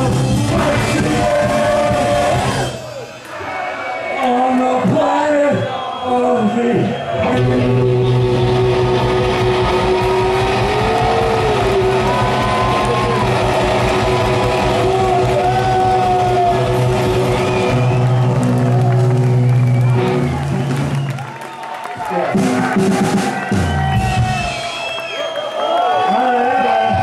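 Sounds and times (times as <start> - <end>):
punk band playing live: 0.0 - 3.1, 7.2 - 21.2, 22.0 - 24.9.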